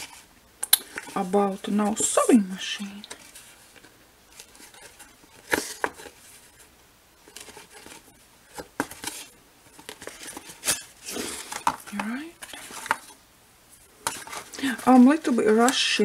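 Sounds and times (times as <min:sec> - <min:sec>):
paper rustling and crinkling: 0:00.9 - 0:13.2, 0:13.8 - 0:16.0.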